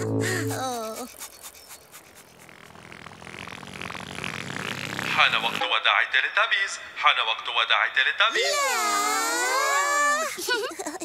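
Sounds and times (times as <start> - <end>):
rattling whirring sound effect: 0.0 - 5.8.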